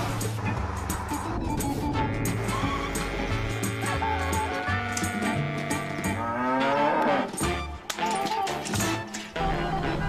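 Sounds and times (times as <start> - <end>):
background music: 0.0 - 10.0
cow mooing: 2.1 - 7.4.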